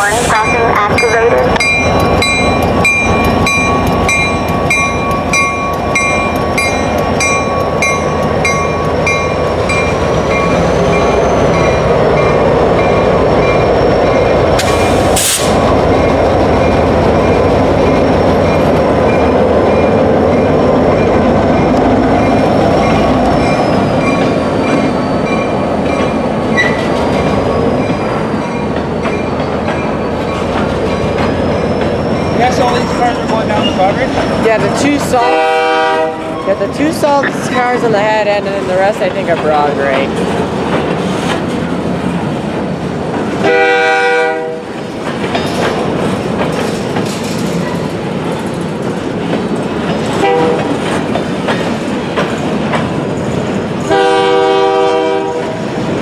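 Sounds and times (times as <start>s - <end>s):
locomotive bell ringing: 0.0s - 14.5s, 15.9s - 35.4s, 36.2s - 40.1s
diesel locomotive engines: 0.0s - 56.0s
wheels rumbling on rail: 0.0s - 56.0s
loud hiss: 14.6s - 15.6s
wheel squeal: 23.3s - 25.5s.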